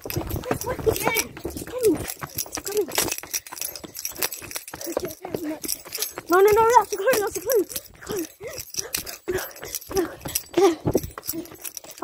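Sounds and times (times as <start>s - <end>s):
running footsteps on paving: 0.0s - 12.0s.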